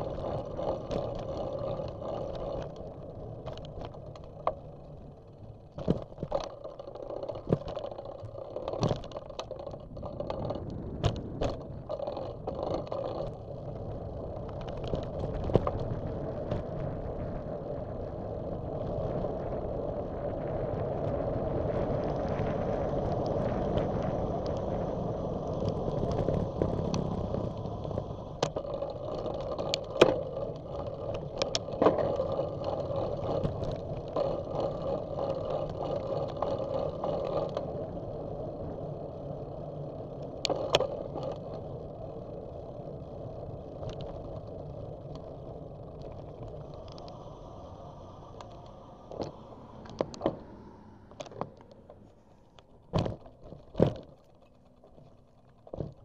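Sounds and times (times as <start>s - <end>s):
bicycle tyres on asphalt: 0.0s - 56.0s.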